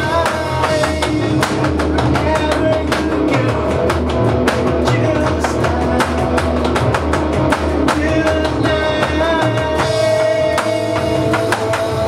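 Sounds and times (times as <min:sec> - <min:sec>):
bass guitar: 0:00.0 - 0:12.0
electric guitar: 0:00.0 - 0:12.0
electronic drum kit beat: 0:00.0 - 0:12.0
man singing: 0:00.0 - 0:12.0.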